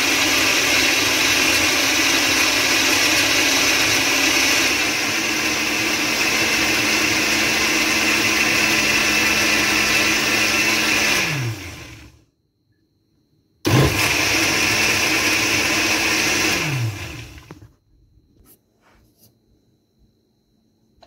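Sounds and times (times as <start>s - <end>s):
blender running: 0.0s - 12.2s, 13.7s - 17.6s.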